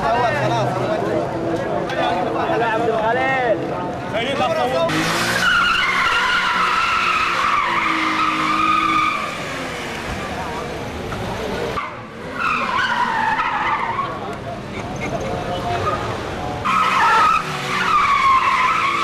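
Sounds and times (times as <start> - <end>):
car engine: 0.0 - 19.0
tyres squealing on asphalt: 0.0 - 19.0.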